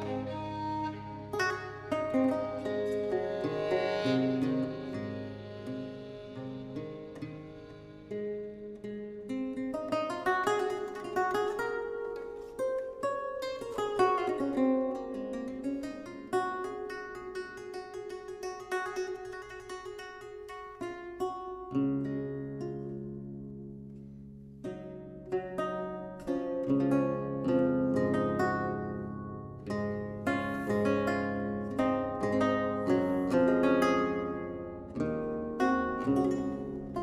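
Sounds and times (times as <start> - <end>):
lute plucked notes and chords: 0.0 - 37.0.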